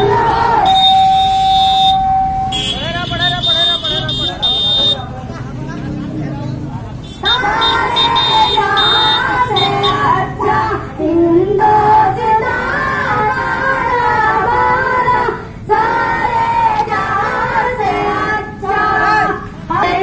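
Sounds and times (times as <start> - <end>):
voices shouting slogans: 0.0 - 5.1, 6.8 - 20.0.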